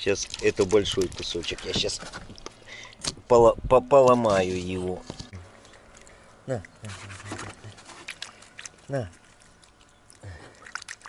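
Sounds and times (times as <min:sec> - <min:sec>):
sharp clicks and splashes: 0:00.0 - 0:03.3, 0:03.9 - 0:11.0.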